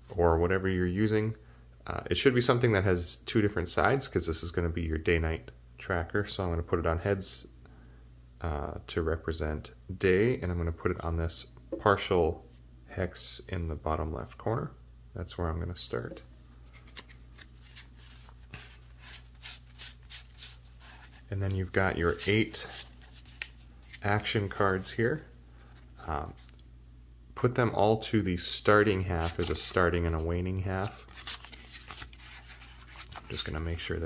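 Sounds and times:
steady low hum: 0.0 - 34.0
cards clicking and rustling: 16.7 - 24.9, 29.2 - 30.1, 30.8 - 34.0.

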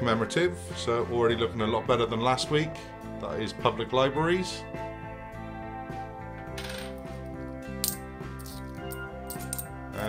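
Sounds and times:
background music: 0.0 - 10.0
coins clinking: 6.5 - 7.2, 7.8 - 9.7.

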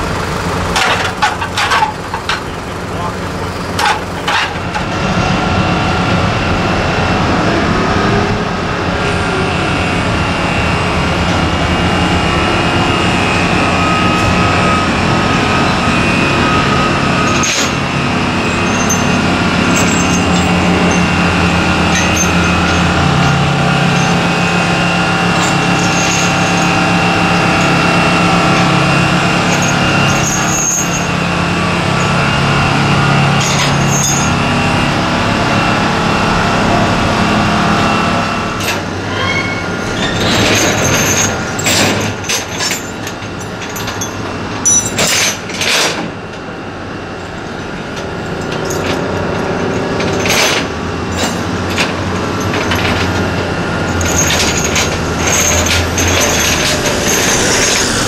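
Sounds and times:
heavy engine running: 0.0 - 58.0
metallic chain clanks: 17.2 - 17.8, 18.4 - 31.2, 33.4 - 34.4, 38.6 - 46.0, 47.2 - 58.0.

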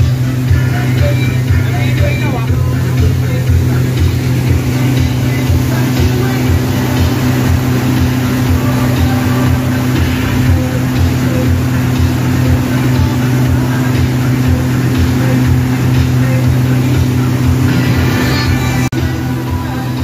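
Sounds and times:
outboard motor drone: 0.0 - 20.0
water rushing from wake: 0.0 - 20.0.

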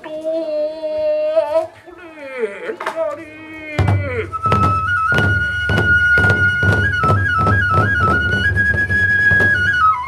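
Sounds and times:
person chanting: 0.0 - 4.4
barrel drum strokes: 3.8 - 9.8
bamboo flute high note: 4.1 - 10.0.

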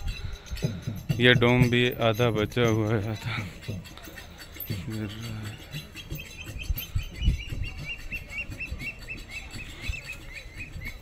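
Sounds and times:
rumbles and thumps on microphone: 0.0 - 3.9
bird chirping rapidly: 4.4 - 11.0.

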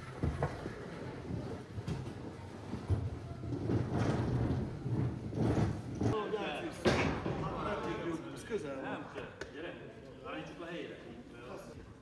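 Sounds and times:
scenery rolling on wooden floor: 0.0 - 6.2.

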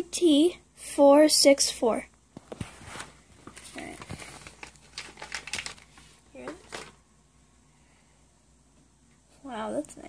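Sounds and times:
plastic bag crinkling: 2.7 - 7.0.

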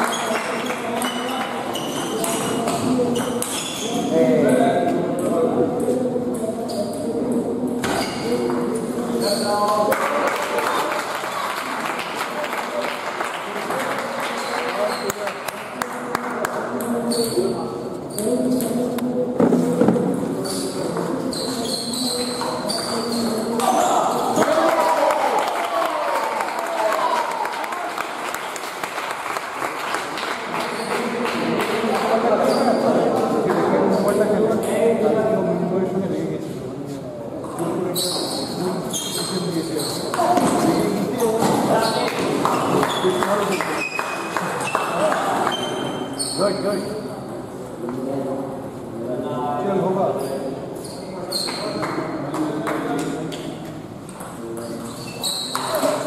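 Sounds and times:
spectators talking: 0.0 - 56.0.

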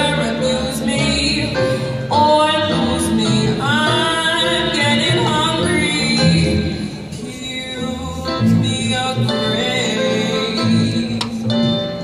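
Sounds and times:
double bass: 0.0 - 12.0
woman singing jazz: 0.0 - 12.0.

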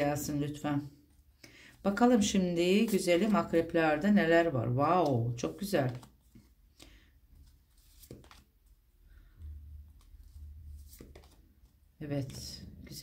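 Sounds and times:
cards rustling and ticking: 1.4 - 3.8, 4.9 - 9.0, 9.8 - 12.5.

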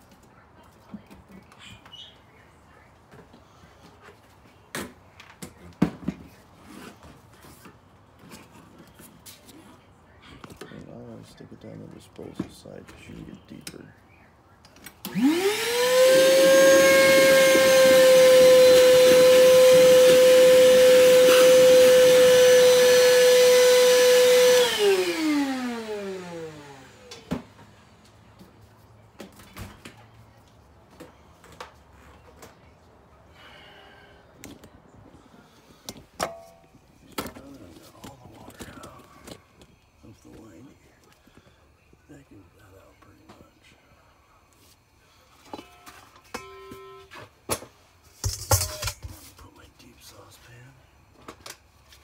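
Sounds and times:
wet dry vacuum motor whine: 15.0 - 28.1.

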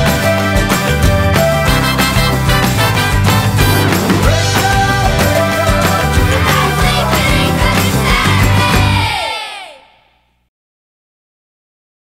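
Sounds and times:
children's rock song: 0.0 - 10.0.

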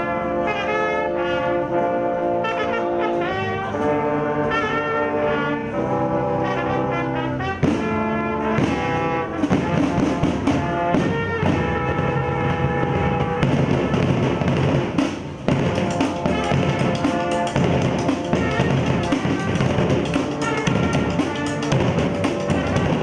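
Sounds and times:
brass band playing: 0.0 - 23.0
marching drums beat: 7.6 - 23.0.

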